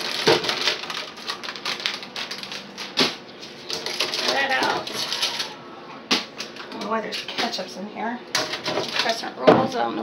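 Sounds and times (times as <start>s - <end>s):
plastic packages crinkling: 0.0s - 5.6s.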